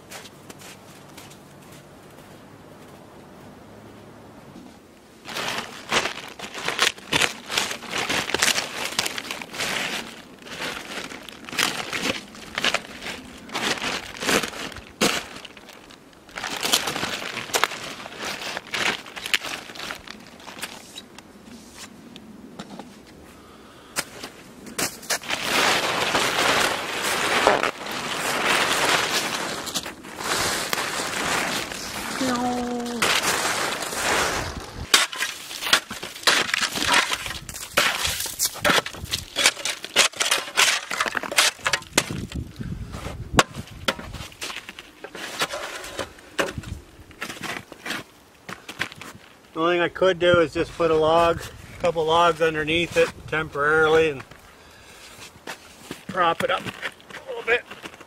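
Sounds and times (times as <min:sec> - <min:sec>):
plastic tarp crinkling: 0:05.2 - 0:21.0, 0:25.0 - 0:42.5.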